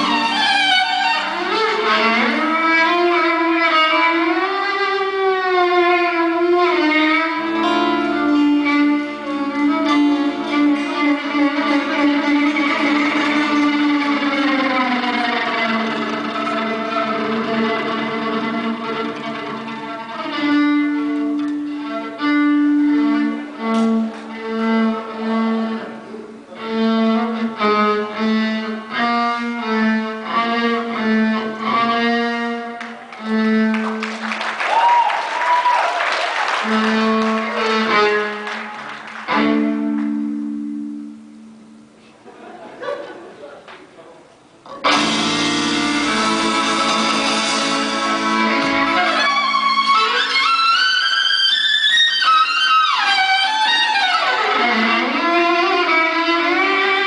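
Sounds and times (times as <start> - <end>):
guitar accompaniment: 0.0 - 26.5, 27.2 - 42.3, 44.6 - 57.0
fiddle playing: 0.0 - 35.7, 36.4 - 42.0, 44.8 - 57.0.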